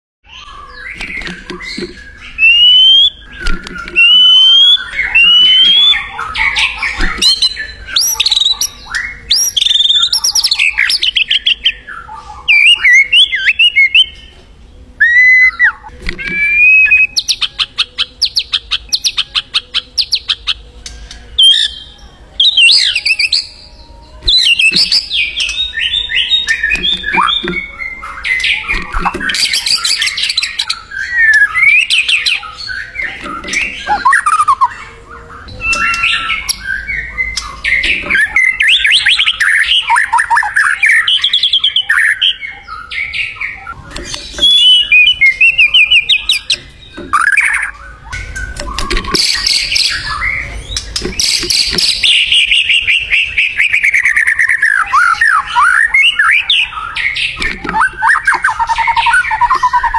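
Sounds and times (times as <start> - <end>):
songbird singing trills and whistles: 0.3 - 59.9.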